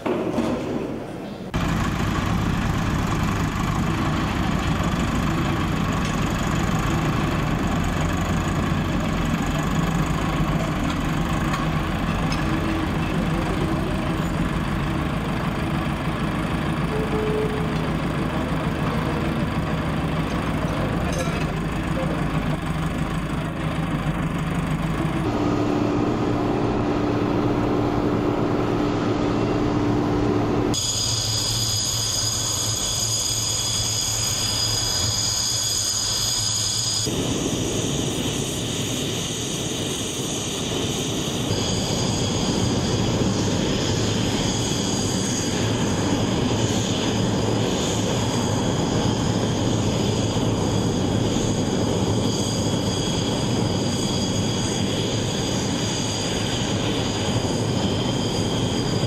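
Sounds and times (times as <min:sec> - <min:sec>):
tractor diesel engine idling: 0:01.5 - 0:37.0
high-pitched whine: 0:01.6 - 0:59.0
steady hum: 0:09.6 - 0:32.8.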